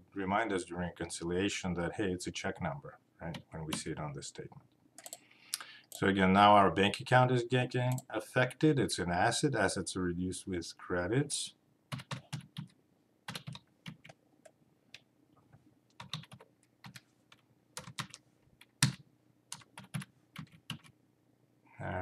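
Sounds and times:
computer keyboard typing: 5.0 - 5.2, 11.9 - 14.2, 15.9 - 20.9.

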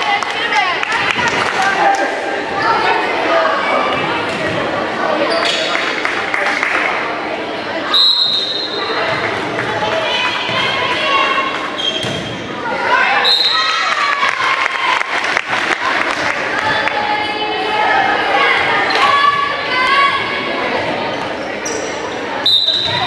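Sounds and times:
voices of players and spectators: 0.0 - 23.0
referee's whistle: 7.9 - 8.8, 13.2 - 13.7, 22.4 - 23.0.

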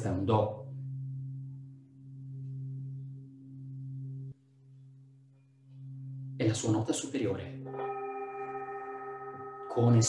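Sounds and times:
singing bowl humming: 0.1 - 10.0.

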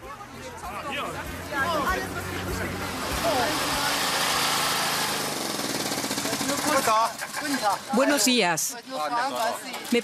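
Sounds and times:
voices: 0.0 - 4.4
small engine running: 0.7 - 7.9.

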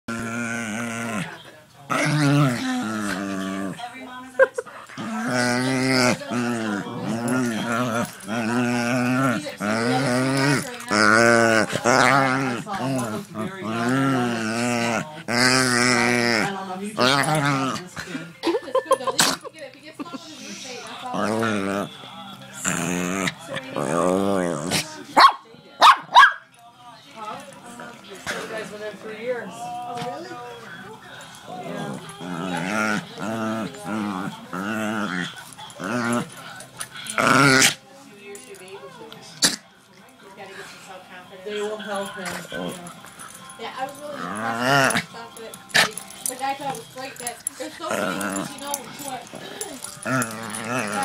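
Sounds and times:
dog groaning: 0.1 - 4.0, 4.6 - 18.2, 20.4 - 22.0, 22.6 - 25.0, 31.2 - 37.8, 42.2 - 51.0.

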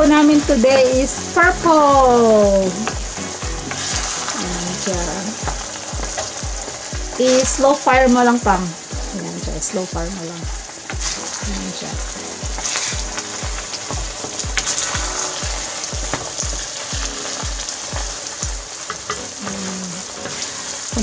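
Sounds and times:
low rhythmic thumping: 0.0 - 21.0
rice mixture sizzling in a pan: 0.0 - 21.0.

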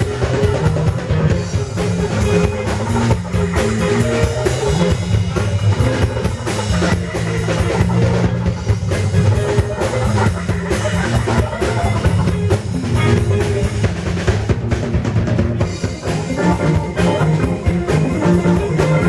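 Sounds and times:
drum kit: 0.0 - 19.0
rock band playing: 0.0 - 19.0.

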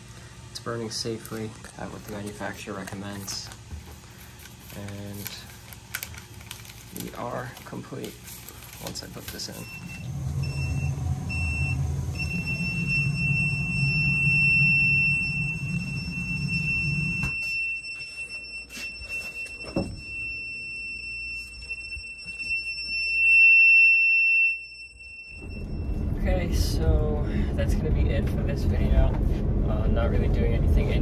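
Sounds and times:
high-pitched alarm beeping: 9.3 - 27.2
low rumble: 9.6 - 17.2, 25.2 - 31.0.

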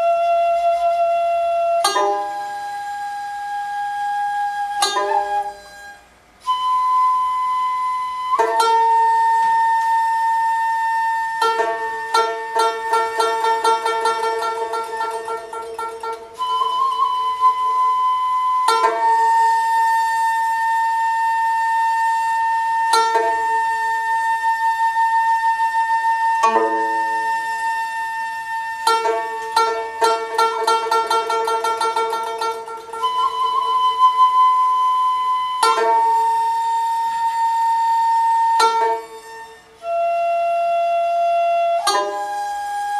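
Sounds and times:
bamboo flute sustained notes: 0.0 - 42.9
bowed fiddle sustained notes: 0.0 - 42.9
plucked lute strokes: 0.0 - 42.9.

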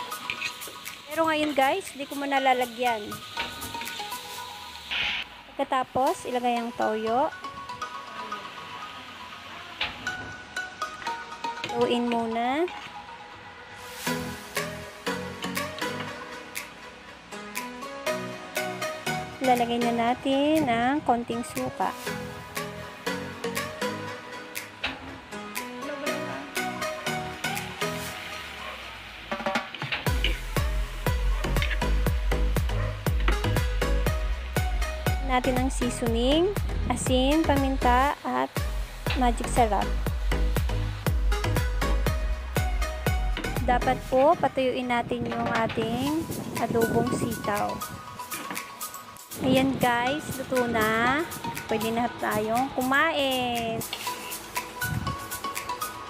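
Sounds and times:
music with drum beat: 0.0 - 4.7, 29.2 - 44.3
beans sizzling in frying pan: 0.0 - 7.1, 13.8 - 19.2, 21.4 - 35.2, 37.3 - 43.6, 52.2 - 56.0
deep bass: 30.1 - 44.1
metal ladle scraping pan: 53.8 - 54.4.

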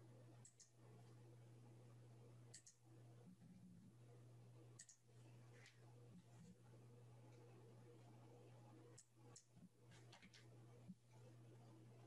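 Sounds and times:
low electrical hum: 0.0 - 12.0
computer mouse clicks: 0.4 - 0.8, 2.5 - 2.8, 4.8 - 5.0.

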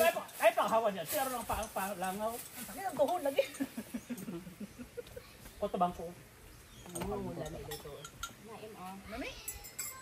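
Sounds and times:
dishes and cups clinking: 6.8 - 8.4, 9.4 - 10.0.

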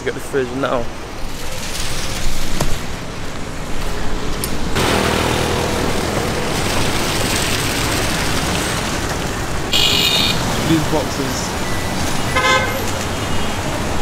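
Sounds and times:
road traffic noise: 0.0 - 14.0
vehicle horn beep: 9.7 - 10.4, 12.2 - 13.6.

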